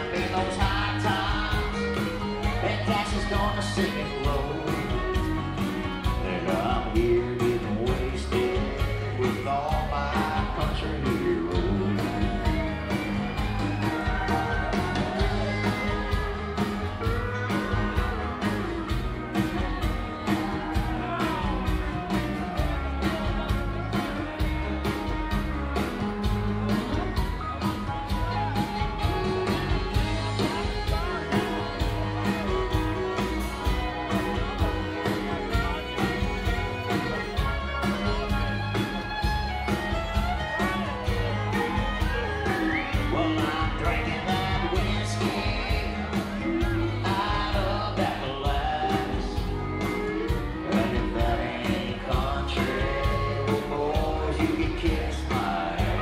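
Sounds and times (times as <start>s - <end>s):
guitars: 0.0s - 56.0s
live rock band playing: 0.0s - 56.0s.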